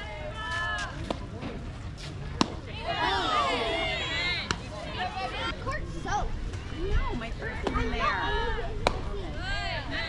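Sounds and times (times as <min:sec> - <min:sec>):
crowd shouting and cheering: 0:02.8 - 0:06.0.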